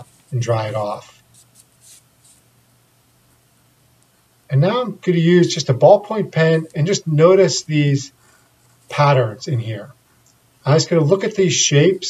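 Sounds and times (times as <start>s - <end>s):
ballpoint pen scratching on paper: 1.2s - 2.5s.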